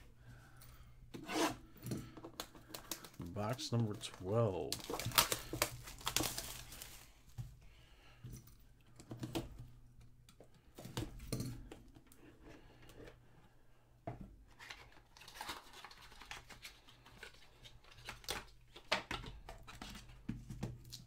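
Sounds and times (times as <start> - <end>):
plastic wrap crinkling: 2.7 - 7.4.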